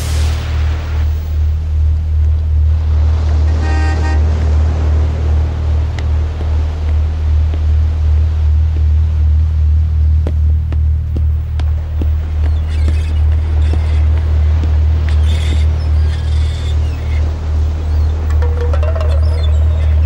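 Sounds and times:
steady deep rumble: 0.0s - 3.5s, 4.2s - 20.0s.

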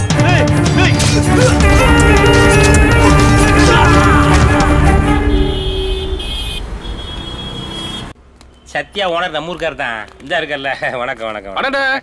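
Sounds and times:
vehicle horns honking: 1.5s - 8.2s
traffic rumble: 1.7s - 11.6s.

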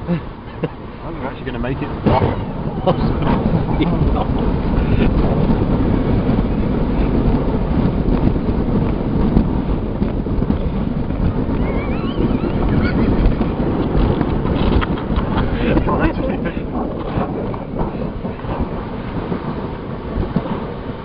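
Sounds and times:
sled runners rumbling on ice: 0.0s - 21.0s
wind buffeting microphone: 0.0s - 21.0s.

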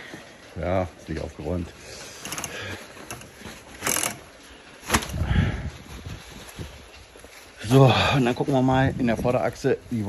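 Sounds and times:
rumble of shifting objects: 0.0s - 10.0s
rustle of rummaging: 0.0s - 10.0s.

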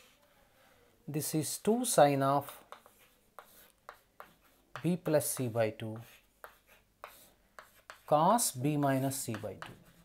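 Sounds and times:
chalk scratching on blackboard: 2.4s - 10.0s.

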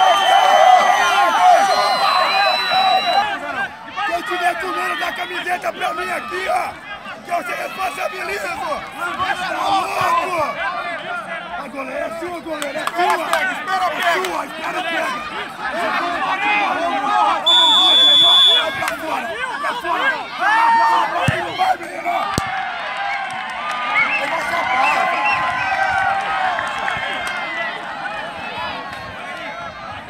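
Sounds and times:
referee's whistle: 0.0s - 3.4s, 17.4s - 18.9s
crowd talking and shouting: 0.0s - 30.0s.

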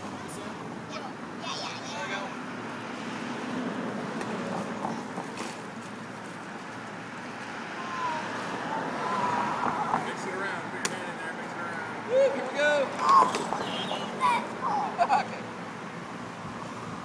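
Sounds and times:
traffic going by: 0.0s - 17.0s.

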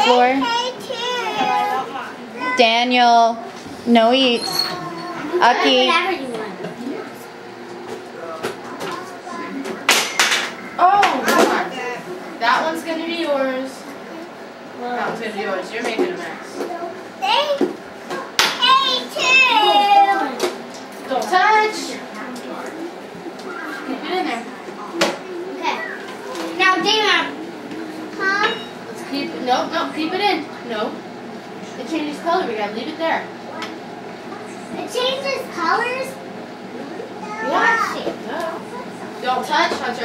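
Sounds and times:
young children's voices: 0.0s - 2.6s, 16.7s - 20.4s, 34.3s - 36.2s, 36.8s - 38.1s
children and adults chattering: 0.0s - 9.9s, 10.5s - 40.0s.

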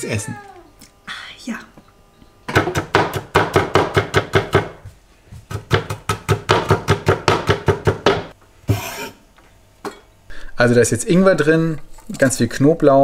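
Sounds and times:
knife chopping on cutting board: 2.5s - 4.9s, 5.5s - 9.0s.

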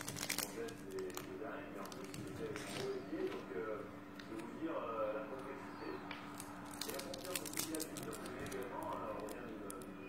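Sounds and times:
plastic bag crinkling: 0.0s - 3.0s, 6.3s - 9.9s.

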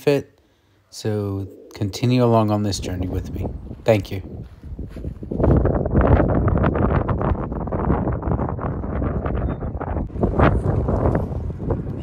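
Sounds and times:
wind buffeting microphone: 2.0s - 12.0s.

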